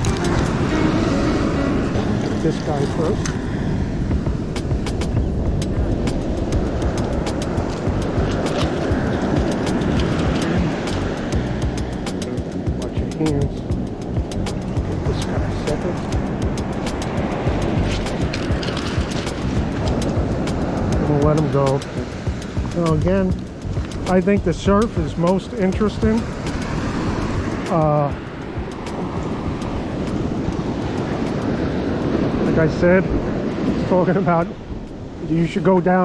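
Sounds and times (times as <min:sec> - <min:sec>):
surf breaking: 0:00.0 - 0:36.0
wind rumbling on microphone: 0:00.0 - 0:36.0
sharp clicks and taps: 0:04.6 - 0:15.4, 0:21.7 - 0:24.2.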